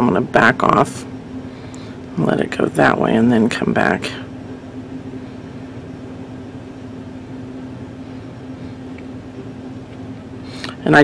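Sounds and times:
mechanical room hum: 0:00.0 - 0:11.0.

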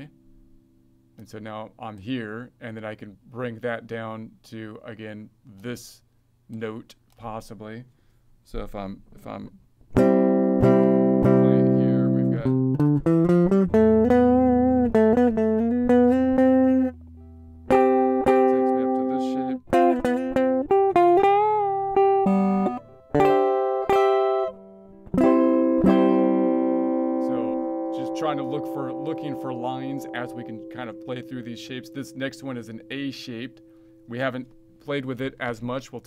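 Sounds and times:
guitar playing scale notes: 0:00.0 - 0:02.3, 0:09.2 - 0:36.0.

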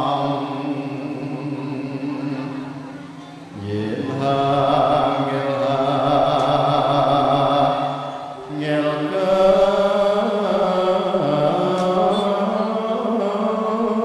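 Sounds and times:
man singing chant-like held notes: 0:00.0 - 0:14.0.

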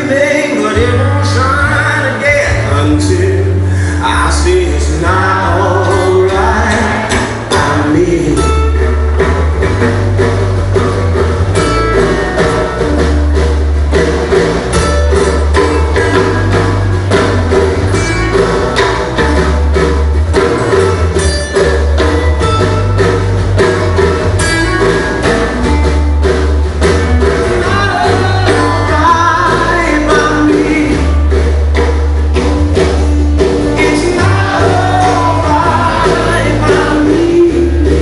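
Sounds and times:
acoustic guitars: 0:00.0 - 0:38.0
deep bass: 0:00.0 - 0:38.0
percussion steady beat: 0:07.1 - 0:38.0.

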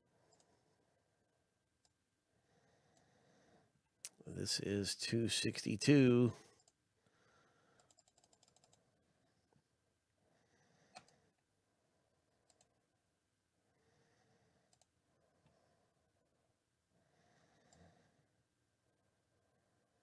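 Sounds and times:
keyboard and mouse clicks: 0:07.8 - 0:08.8.

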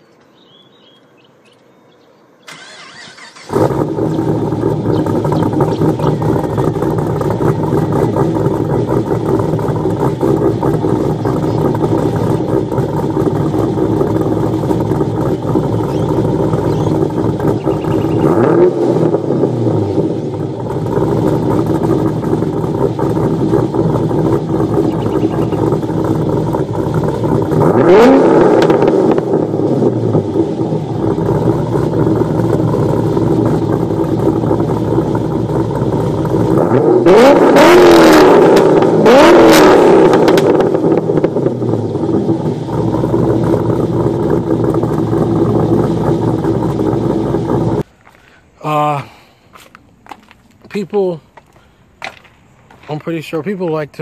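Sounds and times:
car engine idling and revving: 0:02.5 - 0:54.0.

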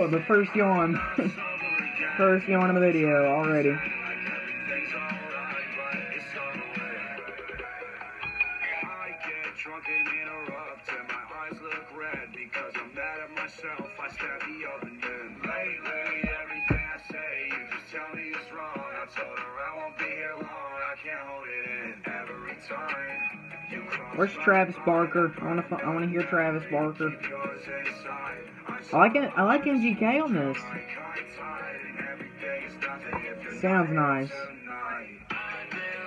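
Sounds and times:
pop rock song with male vocals: 0:00.0 - 0:36.0.

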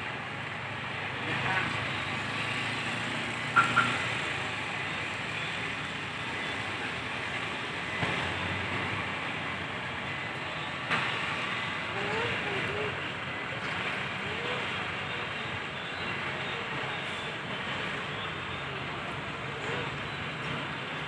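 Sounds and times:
bus engine running: 0:00.0 - 0:21.0
distant voices: 0:00.1 - 0:21.0.

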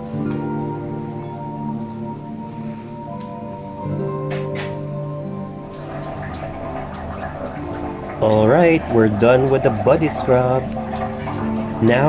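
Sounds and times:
soft background music: 0:00.0 - 0:12.0
water dripping and splashing: 0:00.0 - 0:12.0.

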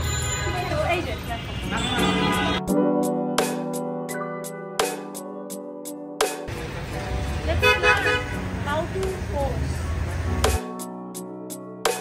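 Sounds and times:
background music: 0:00.0 - 0:12.0
low traffic rumble: 0:06.5 - 0:10.6.

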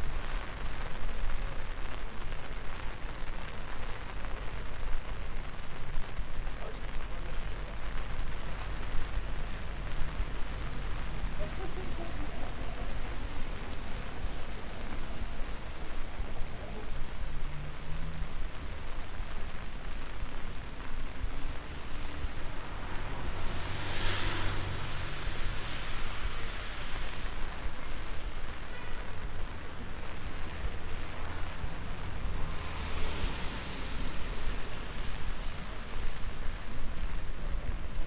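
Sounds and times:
cars passing on wet asphalt: 0:00.0 - 0:38.0
low traffic rumble: 0:00.0 - 0:38.0
traffic hiss on wet road: 0:00.0 - 0:38.0.

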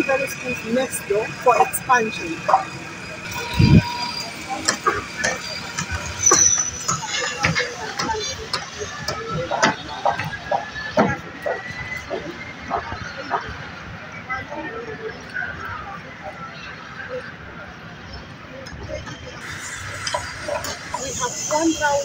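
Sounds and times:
indistinct background chatter: 0:00.0 - 0:22.0
outdoor background noise: 0:00.0 - 0:22.0.

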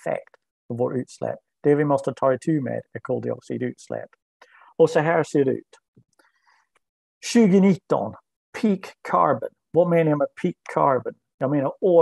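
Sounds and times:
man speaking: 0:00.0 - 0:05.8, 0:07.2 - 0:12.0.

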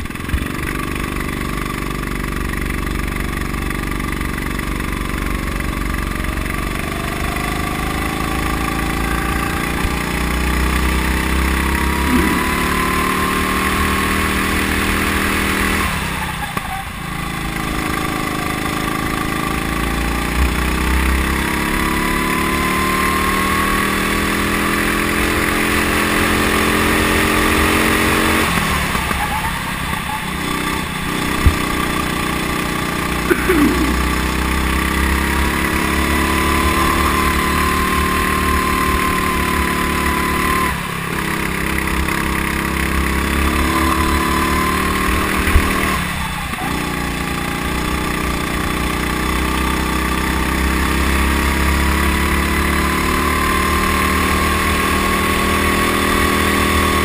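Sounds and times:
go-kart engine revving: 0:00.0 - 0:57.0.

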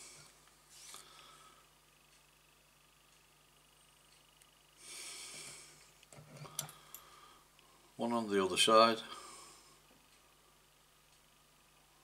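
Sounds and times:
light clicks and taps of tools: 0:05.4 - 0:07.7
soft breath close to microphone: 0:09.0 - 0:09.9.

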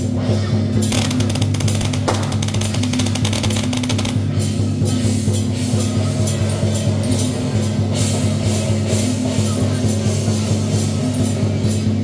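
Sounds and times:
loud percussion music: 0:00.9 - 0:06.1.

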